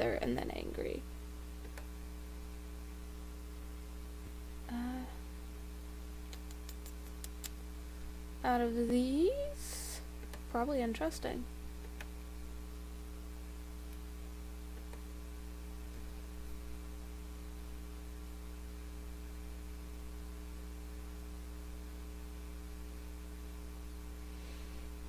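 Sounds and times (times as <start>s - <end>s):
electrical mains hum: 0.0s - 25.0s
faint clicks: 6.3s - 7.6s.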